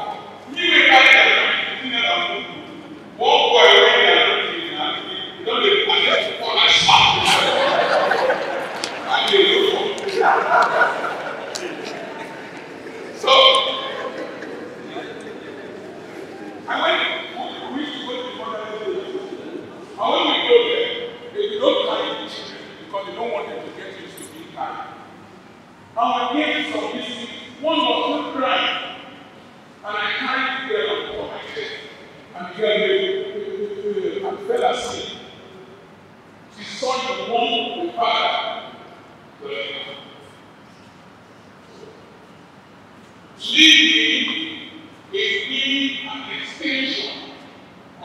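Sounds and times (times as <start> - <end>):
man speaking: 0.0 - 10.8, 13.2 - 14.2, 16.3 - 25.1, 26.0 - 29.1, 29.8 - 35.4, 36.5 - 38.7, 39.4 - 40.2, 43.4 - 47.4
man speaking over a pa: 3.2 - 7.7.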